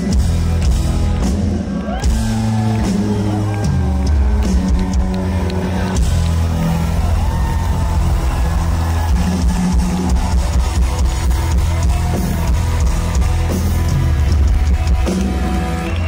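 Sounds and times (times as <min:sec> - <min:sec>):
bass guitar: 0:00.0 - 0:16.0
drum kit beat: 0:00.0 - 0:16.0.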